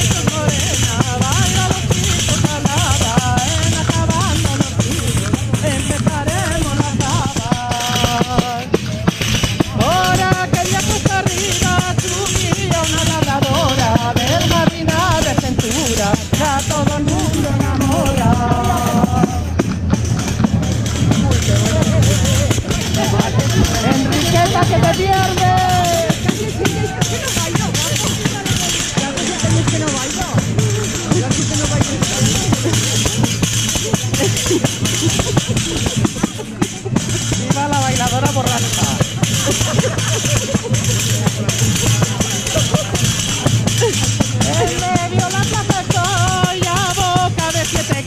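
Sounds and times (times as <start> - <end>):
group singing: 0.0 - 38.2, 38.8 - 48.0
frame drum with jingles: 0.0 - 48.0.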